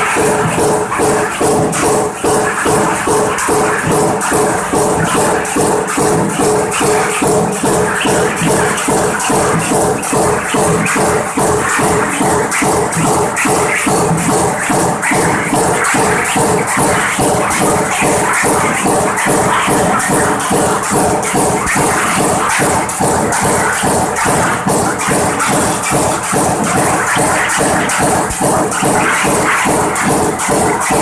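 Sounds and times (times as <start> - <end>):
power press rapid clatter: 0.0 - 31.0
steady machine hum: 0.0 - 31.0.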